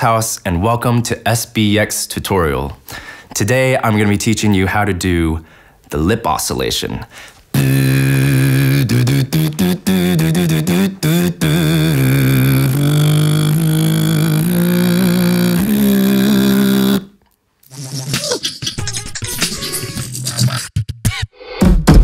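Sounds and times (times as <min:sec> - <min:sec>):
beatbox lip buzz melody: 0:07.5 - 0:20.8.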